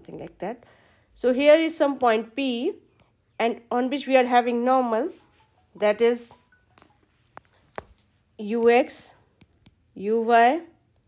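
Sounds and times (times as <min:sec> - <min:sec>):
stylus tapping tablet screen: 0:04.9 - 0:10.3.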